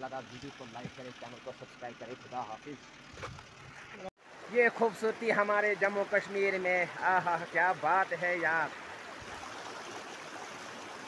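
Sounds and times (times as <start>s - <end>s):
stream rushing over rocks: 4.2s - 11.0s.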